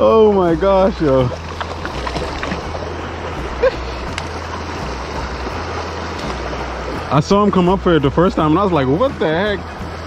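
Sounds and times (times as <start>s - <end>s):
creek water running over rocks: 0.0s - 10.0s.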